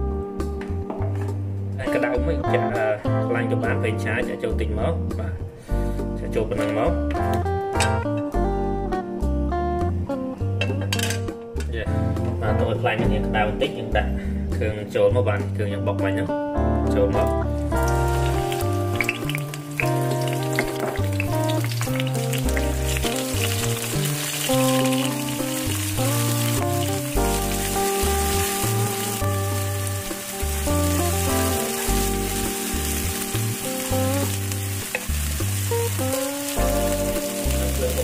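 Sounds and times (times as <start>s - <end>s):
background music with bass line: 0.0s - 38.0s
paste sizzling in hot oil: 17.8s - 38.0s.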